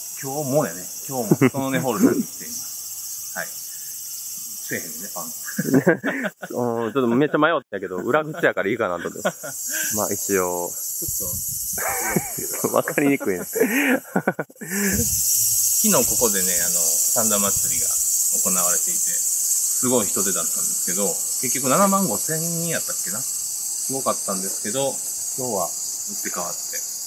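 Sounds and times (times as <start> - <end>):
insects trilling: 0.0 - 27.0
man speaking: 0.4 - 2.6, 4.7 - 15.1, 15.8 - 19.2, 19.8 - 23.2.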